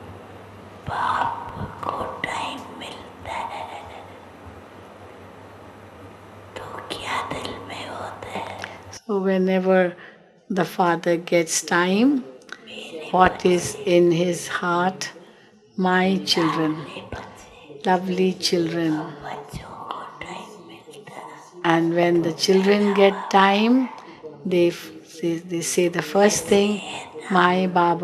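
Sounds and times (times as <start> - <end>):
low steady hum: 0.0 - 28.0
faint soft voices: 0.8 - 4.2, 11.5 - 28.0
person whispering: 0.8 - 4.2, 6.6 - 9.1, 11.7 - 28.0.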